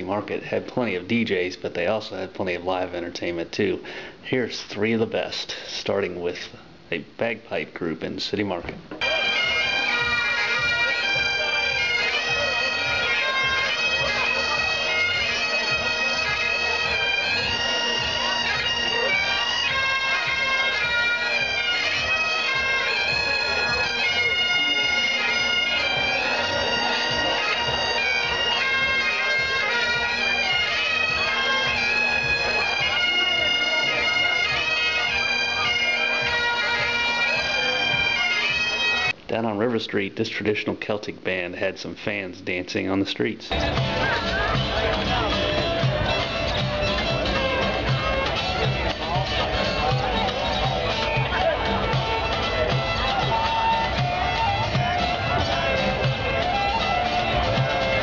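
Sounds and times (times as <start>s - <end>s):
bagpipes playing: 9.0s - 39.2s, 43.5s - 58.0s.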